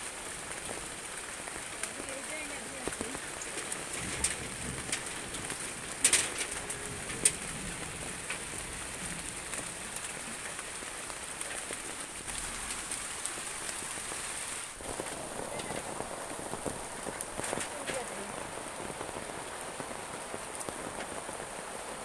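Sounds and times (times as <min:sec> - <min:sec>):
rain falling on leaves: 0:00.0 - 0:22.0.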